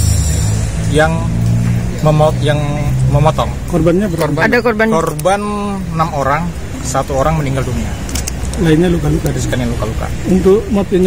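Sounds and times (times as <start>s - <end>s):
steady low engine hum: 0.0s - 11.0s.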